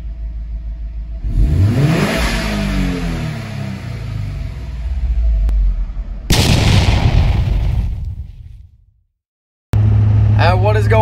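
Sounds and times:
car engine and road noise: 0.0s - 6.5s, 9.8s - 11.0s
man talking: 10.4s - 11.0s.

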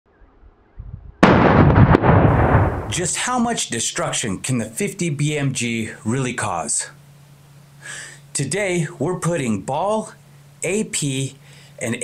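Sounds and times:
loud blast with heavy rumble: 0.8s - 3.4s.

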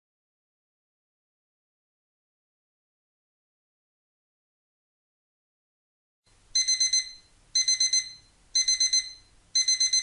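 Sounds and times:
alarm clock beeping: 6.6s - 10.0s.

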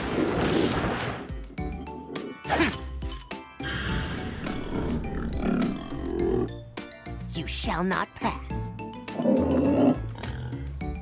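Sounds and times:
background music: 0.4s - 11.0s.

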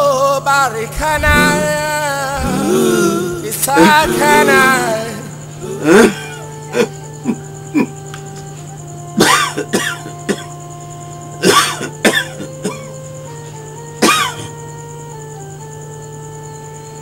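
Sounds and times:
background music held notes: 0.0s - 17.0s
person coughing: 5.6s - 6.9s, 9.2s - 10.5s, 11.4s - 12.8s, 14.0s - 14.5s.

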